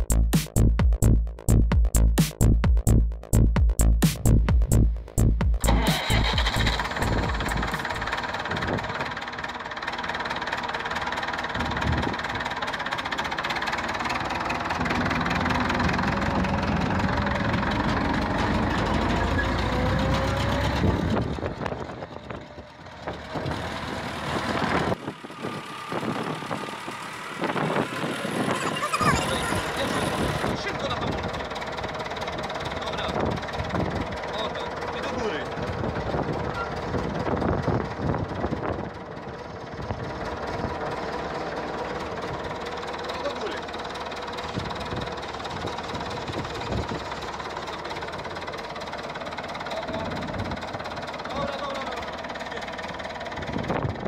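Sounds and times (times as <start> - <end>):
tractor diesel engine running: 0.0 - 54.0.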